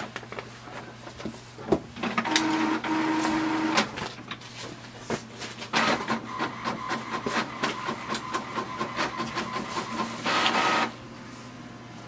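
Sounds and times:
printer clicks: 0:02.0 - 0:03.9
printer mechanism whining: 0:02.0 - 0:04.1, 0:05.7 - 0:11.0.

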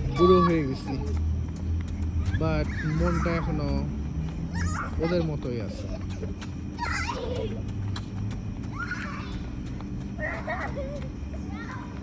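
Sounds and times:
child squealing: 0:02.7 - 0:03.5.

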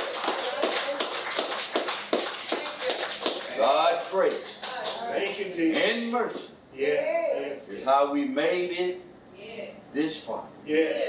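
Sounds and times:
hands clapping in rhythm: 0:00.0 - 0:05.4.

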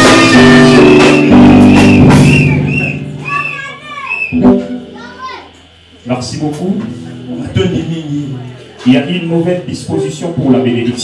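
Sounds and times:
music: 0:00.0 - 0:05.4, 0:06.4 - 0:08.2
several voices: 0:03.2 - 0:11.0.

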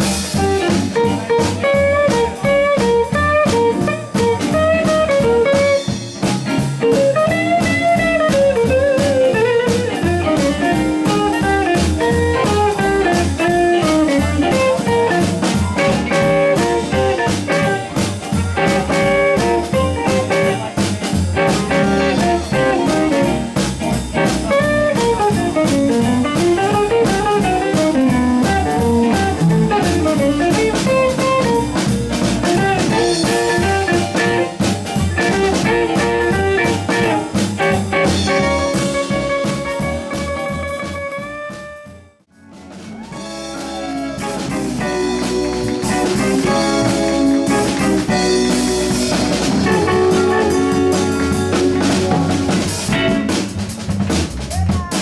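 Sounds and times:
guitar lead with bending notes: 0:00.0 - 0:54.4
blues band playing: 0:00.0 - 0:55.0.

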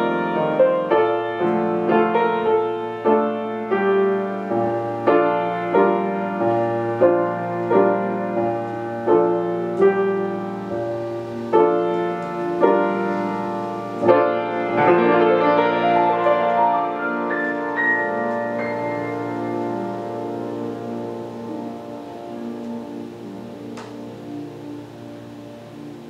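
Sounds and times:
piano waltz: 0:00.0 - 0:26.0.

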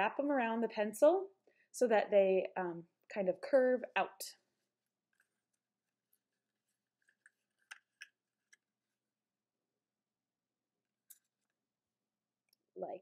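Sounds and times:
paper crinkling: 0:05.1 - 0:09.0.

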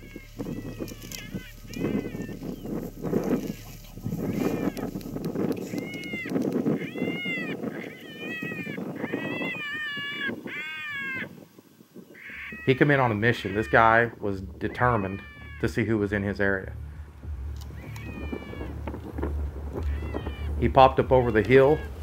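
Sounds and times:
electronic rabbit distress cries: 0:00.0 - 0:02.6, 0:03.2 - 0:04.9, 0:05.6 - 0:11.3, 0:12.2 - 0:16.1, 0:17.7 - 0:18.8, 0:19.8 - 0:22.0.

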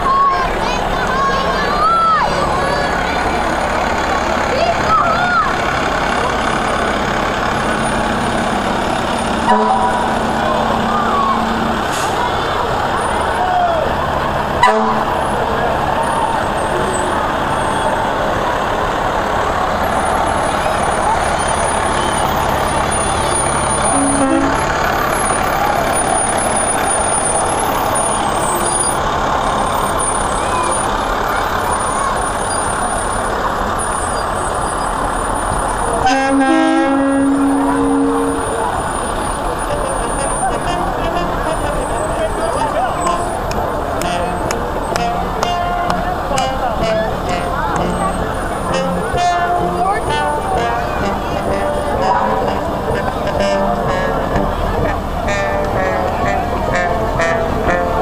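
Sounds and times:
crowd chatter: 0:00.0 - 0:58.0
fire truck engines running: 0:00.0 - 0:58.0
truck horn blasts: 0:07.5 - 0:13.4, 0:14.5 - 0:18.0, 0:19.8 - 0:31.0, 0:35.7 - 0:58.0.

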